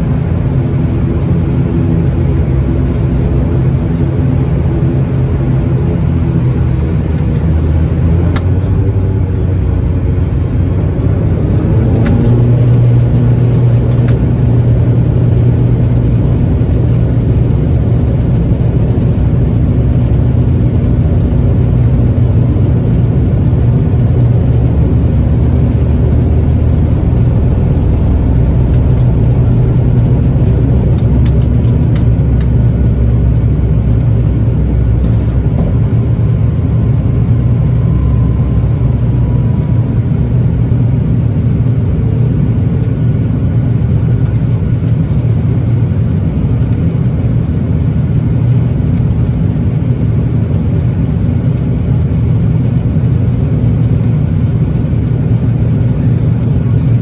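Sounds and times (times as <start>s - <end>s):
turboprop propeller drone: 0.0s - 57.0s.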